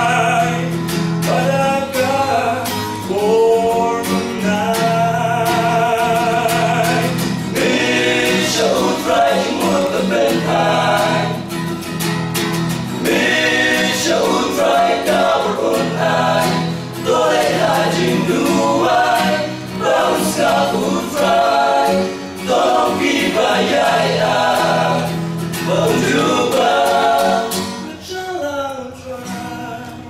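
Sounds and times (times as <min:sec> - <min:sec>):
male choir singing in harmony: 0:03.1 - 0:11.8, 0:12.9 - 0:28.1.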